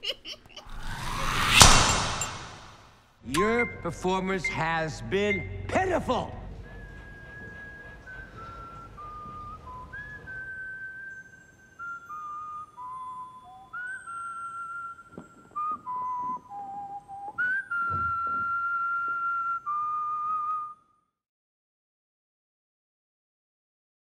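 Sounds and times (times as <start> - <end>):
low thump: 0.9 - 2.8
person whistling a tune: 6.6 - 21.0.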